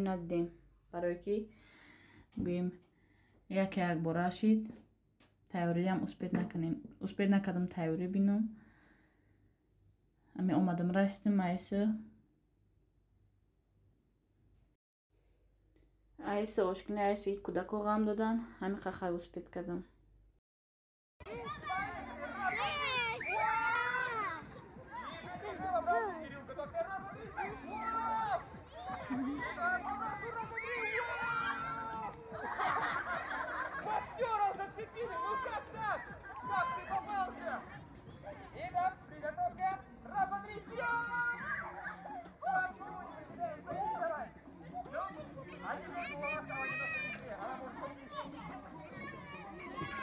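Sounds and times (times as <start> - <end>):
children shouting and chattering: 21.2 - 50.0.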